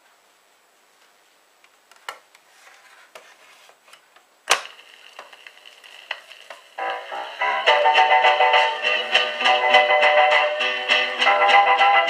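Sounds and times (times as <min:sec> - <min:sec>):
record hiss: 0:00.0 - 0:12.0
record player clack: 0:03.9 - 0:07.2
music: 0:06.8 - 0:12.0.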